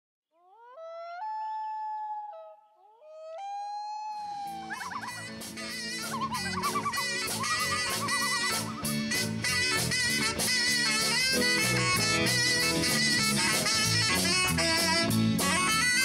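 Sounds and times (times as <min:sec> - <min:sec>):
swing band with drums and saxophone: 0:04.5 - 0:16.0.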